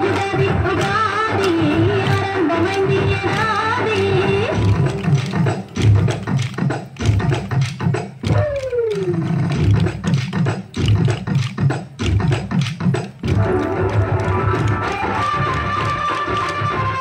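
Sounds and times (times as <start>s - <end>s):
sharp stick clicks: 0.2s - 16.8s
dance music with low beat: 0.2s - 17.0s.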